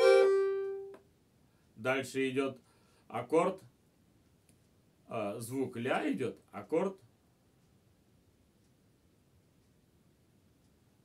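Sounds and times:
accordion note: 0:00.0 - 0:01.0
man's voice: 0:05.1 - 0:07.0.

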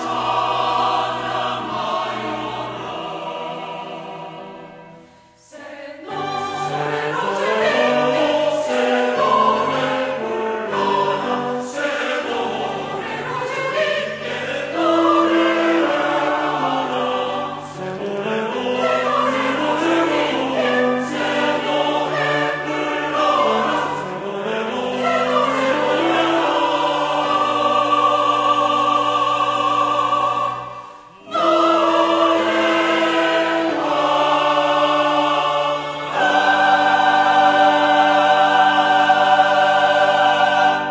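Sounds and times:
church choir singing: 0:00.0 - 0:40.9.

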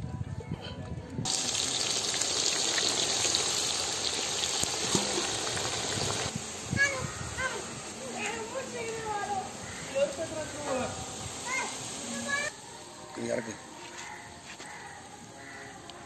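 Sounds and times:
onions sizzling in oil: 0:01.2 - 0:15.8
people and children talking: 0:06.3 - 0:12.7.

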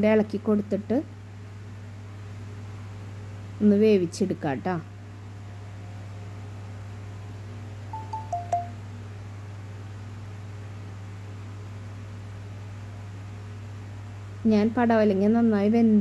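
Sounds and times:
two-note electronic chime: 0:08.0 - 0:08.8.

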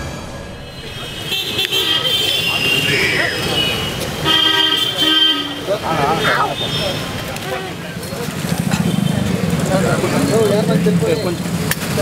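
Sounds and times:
vehicle horns honking: 0:00.6 - 0:08.0
people talking: 0:00.6 - 0:12.0.

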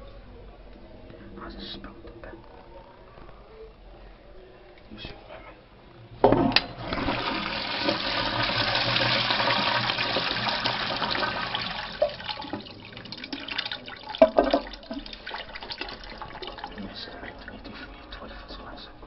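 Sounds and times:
toilet flushing: 0:06.6 - 0:18.3.

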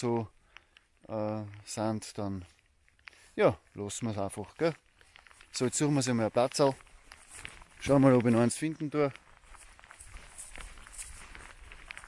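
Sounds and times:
footsteps through wet grass: 0:00.0 - 0:12.0.

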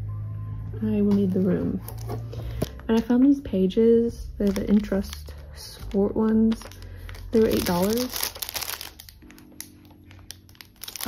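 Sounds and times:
soft lofi music: 0:00.0 - 0:11.0
plastic wrapper crinkling: 0:04.2 - 0:11.0.

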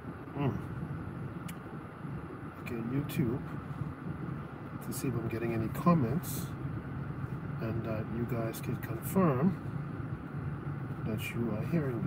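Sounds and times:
car engine hum: 0:00.0 - 0:12.0.

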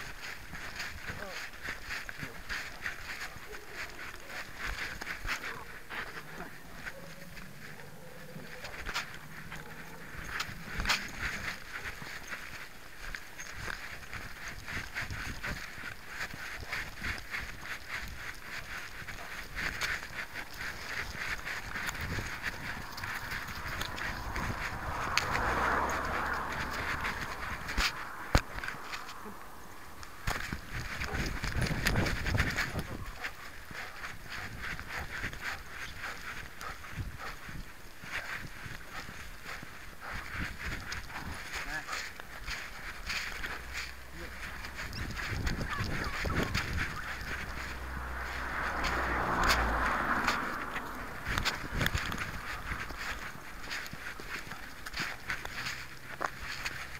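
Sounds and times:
camera scuffing and clicking: 0:00.0 - 0:56.9.

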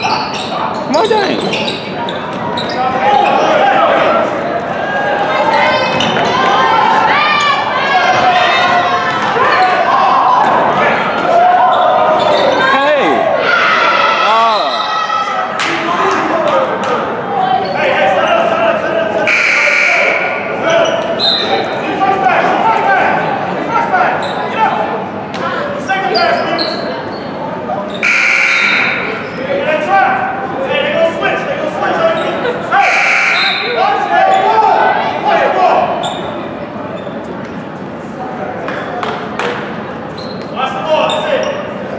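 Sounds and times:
spectators chattering: 0:00.0 - 0:41.9
harsh scoreboard buzzer: 0:28.0 - 0:29.0.

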